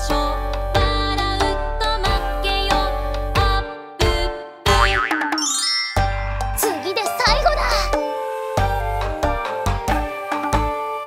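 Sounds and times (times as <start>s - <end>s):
children's song backing music: 0.0s - 4.7s, 6.5s - 10.8s
cartoon boing: 4.7s - 5.6s.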